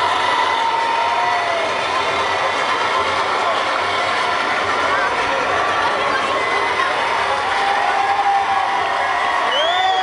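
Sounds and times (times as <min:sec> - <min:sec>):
crowd cheering and yelling: 0:00.0 - 0:10.0.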